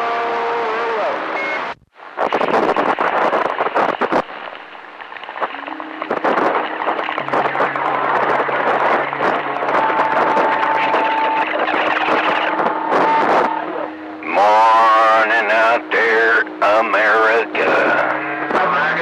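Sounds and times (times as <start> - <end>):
radio static crackling: 0.7 - 19.0.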